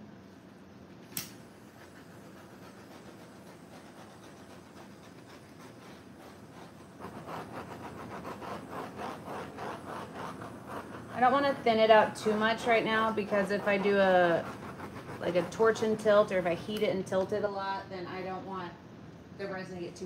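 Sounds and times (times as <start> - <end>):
sharp click: 1.1 - 1.4.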